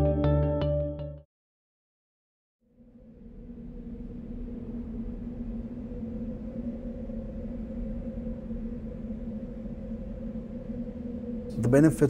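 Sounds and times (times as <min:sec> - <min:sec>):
low two-tone drone: 0:02.7 - 0:12.0
low rumble: 0:02.8 - 0:12.0.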